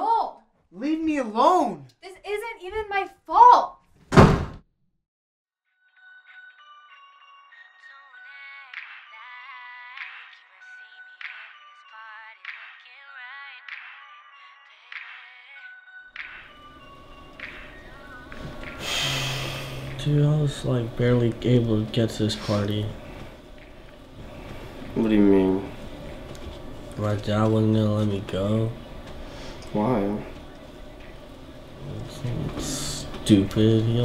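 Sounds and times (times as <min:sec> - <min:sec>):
door slamming: 0:04.1 - 0:04.6.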